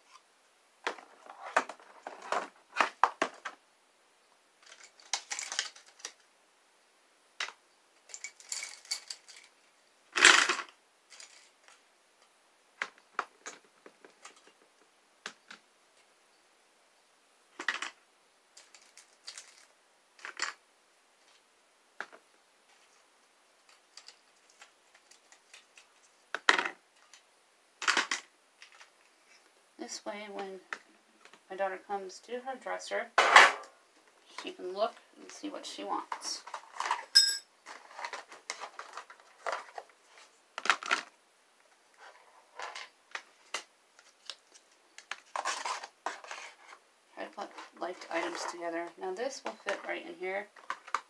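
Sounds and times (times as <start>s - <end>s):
plastic items clicking and tapping: 0.8s - 3.6s, 4.6s - 6.2s, 7.4s - 11.8s, 12.8s - 15.6s, 17.6s - 18.0s, 18.6s - 20.6s, 23.6s - 28.9s, 36.1s - 39.9s, 40.6s - 41.2s, 49.4s - 51.0s.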